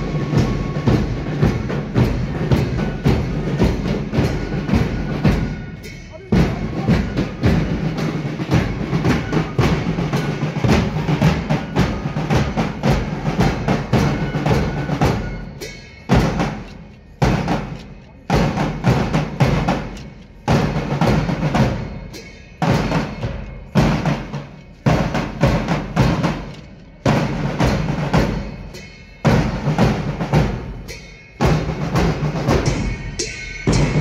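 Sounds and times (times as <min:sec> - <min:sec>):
marching drum band: 0:00.0 - 0:34.0
strong drum beats: 0:00.0 - 0:34.0.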